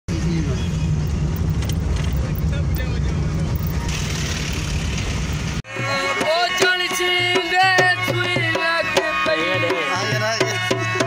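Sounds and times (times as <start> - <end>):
vehicle interior rumble: 0.1 - 5.6
road and wind noise: 0.1 - 5.7.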